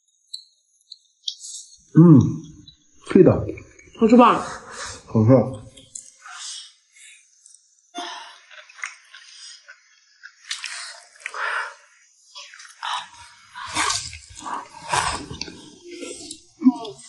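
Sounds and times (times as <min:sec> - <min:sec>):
people slurping and chewing: 0:03.5 - 0:17.0.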